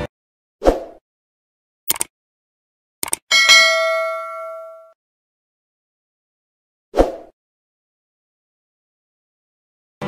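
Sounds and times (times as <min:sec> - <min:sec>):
quick clicks: 0:01.9 - 0:02.1, 0:03.0 - 0:03.2
notification bell ding: 0:03.3 - 0:04.9.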